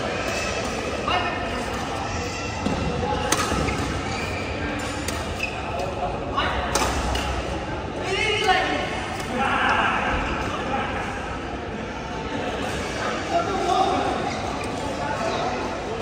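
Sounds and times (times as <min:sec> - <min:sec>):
voices chattering: 0:00.0 - 0:16.0
racket hitting shuttlecock: 0:02.6 - 0:03.9, 0:06.7 - 0:07.3.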